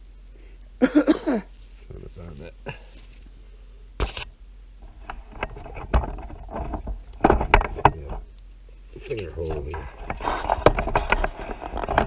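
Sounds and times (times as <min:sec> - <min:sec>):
knife scraping hide: 0:09.9 - 0:12.0.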